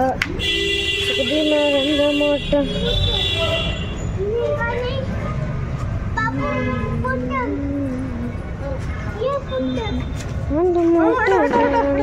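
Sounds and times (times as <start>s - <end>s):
person making wordless sounds: 6.2s - 8.8s.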